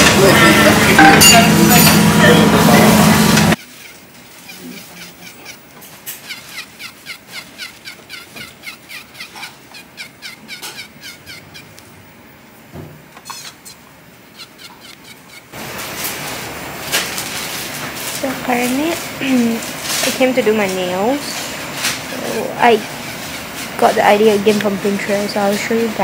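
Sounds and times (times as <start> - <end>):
high falling chirps: 3.5 - 11.8, 14.2 - 15.8.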